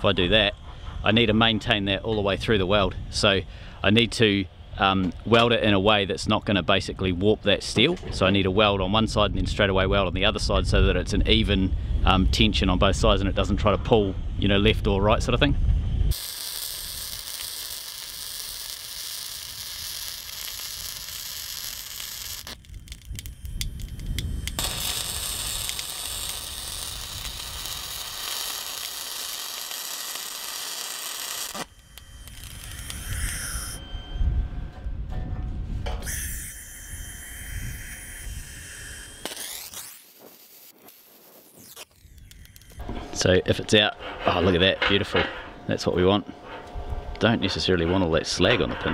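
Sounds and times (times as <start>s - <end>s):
steady tones: 14.1s - 48.9s
welder crackling hiss: 16.1s - 33.8s, 36.0s - 42.8s.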